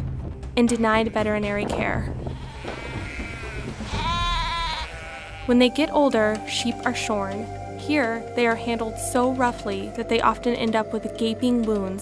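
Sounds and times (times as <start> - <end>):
sheep bleating: 2.4 - 5.6.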